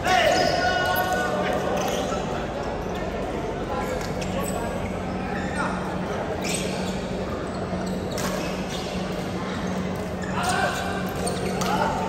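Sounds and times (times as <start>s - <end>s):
echoing court noise: 0.0s - 12.0s
players' voices: 0.0s - 12.0s.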